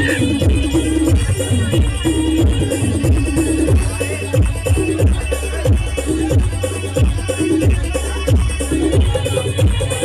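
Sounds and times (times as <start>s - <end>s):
steady bass line: 0.0s - 10.0s.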